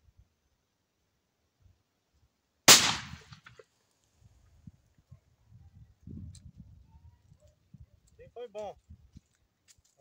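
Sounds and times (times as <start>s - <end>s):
shotgun shot: 2.7s - 3.6s.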